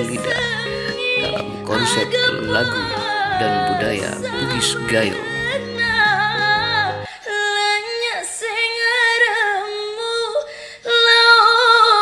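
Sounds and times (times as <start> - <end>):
low accompaniment notes: 0.0 - 7.1
woman singing: 0.0 - 12.0.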